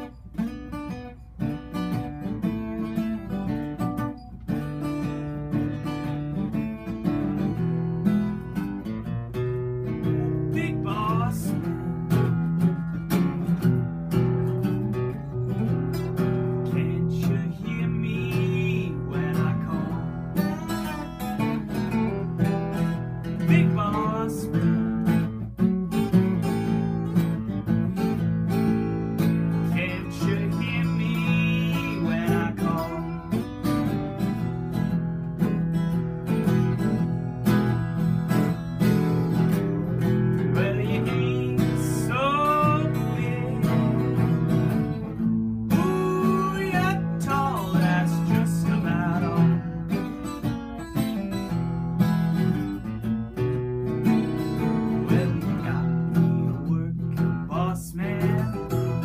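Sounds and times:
acoustic guitars strummed: 0.0 - 59.0.

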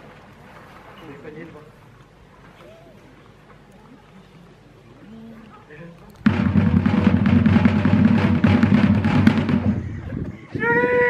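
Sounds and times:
drum roll: 6.2 - 10.3.

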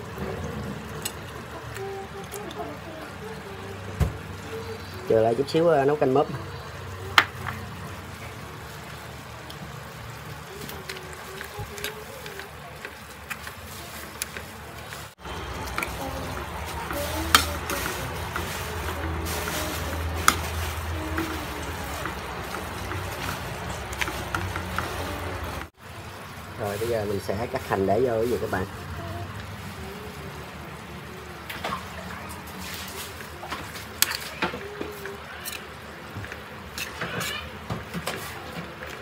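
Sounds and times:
shellfish sizzling in a wok: 0.0 - 39.0
metal ladle scraping a wok: 15.3 - 25.6, 36.7 - 37.6.

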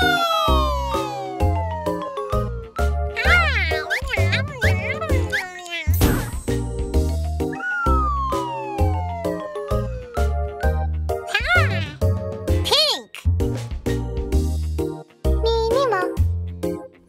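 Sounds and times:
cartoon cat meowing: 0.0 - 1.6, 3.2 - 6.0, 11.3 - 12.0
children's song with bouncing bass: 0.0 - 12.1
long falling tone: 7.5 - 10.3.

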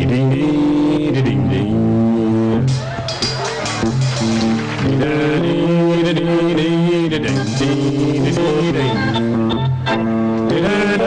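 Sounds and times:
live band music: 2.6 - 6.0, 7.1 - 10.6.

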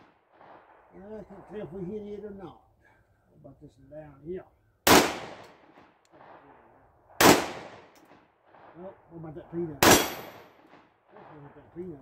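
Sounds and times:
pistol shots: 4.8 - 6.4, 7.2 - 8.1, 9.8 - 11.3.

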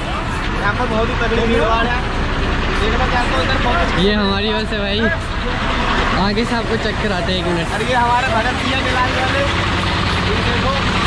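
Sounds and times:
diesel bus engine idling: 0.0 - 11.0
people's voices: 0.0 - 11.0.

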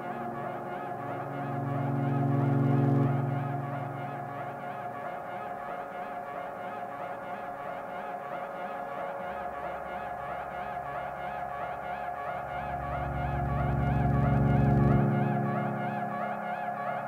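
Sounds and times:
deep sustained note: 0.0 - 6.5, 9.6 - 17.0
low drone: 0.0 - 8.1, 9.1 - 17.0
ambient electronic music: 0.0 - 17.0.

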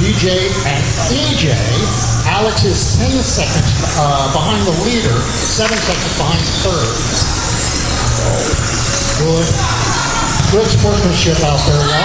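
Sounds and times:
background music: 0.0 - 12.0
dense noise: 0.0 - 12.0.

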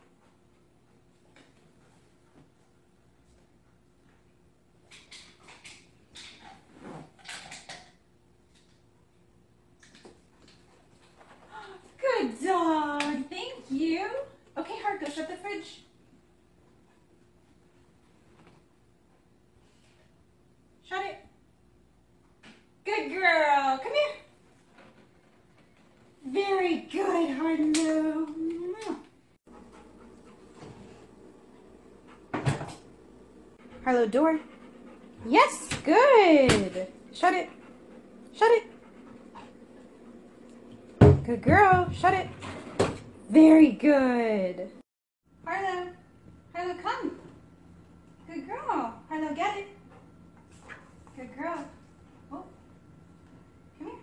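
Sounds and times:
refrigerator door knocks and rattles: 41.0 - 42.2.

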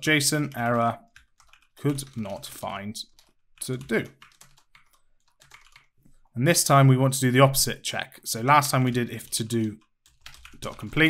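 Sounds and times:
computer keyboard typing: 0.4 - 6.0, 8.8 - 11.0.

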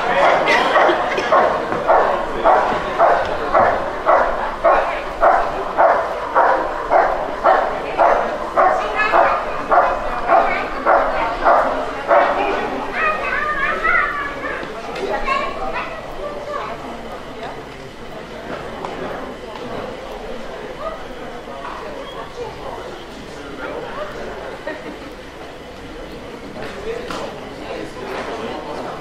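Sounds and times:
dog barking: 0.0 - 13.2.

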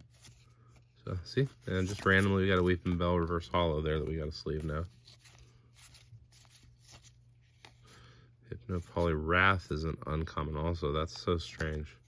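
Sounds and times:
trading cards clicking and rustling: 0.0 - 8.0
low steady hum: 0.0 - 12.0.

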